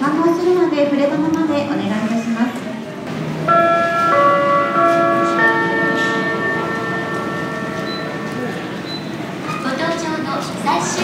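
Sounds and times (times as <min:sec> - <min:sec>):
public-address chime: 0:03.4 - 0:11.0.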